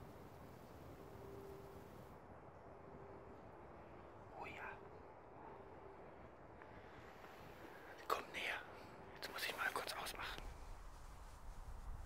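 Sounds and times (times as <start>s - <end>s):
man whispering: 4.2s - 5.6s, 7.8s - 10.6s.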